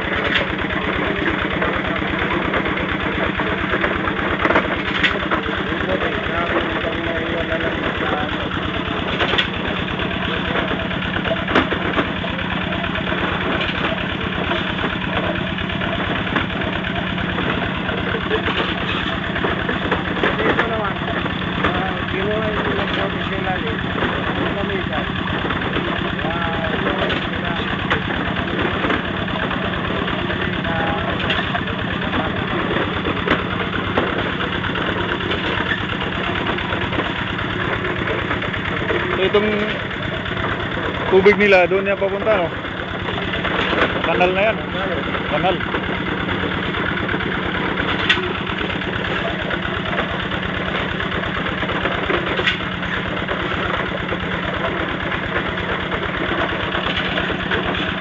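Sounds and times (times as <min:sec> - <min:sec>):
small engine idling: 0:00.0 - 0:58.0
faint voices: 0:05.2 - 0:09.2, 0:10.1 - 0:33.7.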